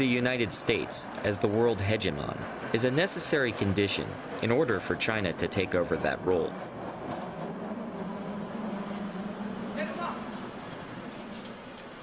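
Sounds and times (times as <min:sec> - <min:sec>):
cable car humming: 0:00.0 - 0:12.0
rumbling street noise: 0:00.0 - 0:12.0.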